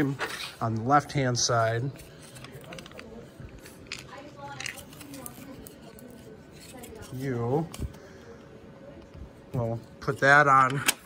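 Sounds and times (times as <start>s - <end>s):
faint murmur of a voice: 0.0s - 10.9s
light clicks and handling noises: 1.9s - 11.0s.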